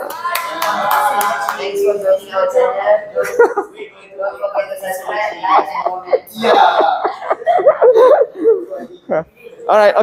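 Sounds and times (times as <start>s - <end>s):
group clapping hands: 0.0s - 1.8s.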